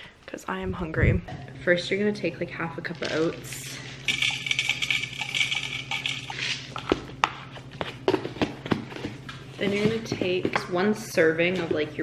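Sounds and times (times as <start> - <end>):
steady low hum: 0.0 - 12.0
containers knocking and clicking: 4.1 - 10.9.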